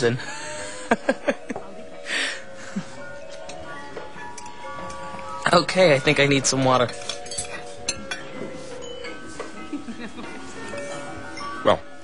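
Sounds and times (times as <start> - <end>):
glassware and cutlery clinking: 3.2 - 12.0.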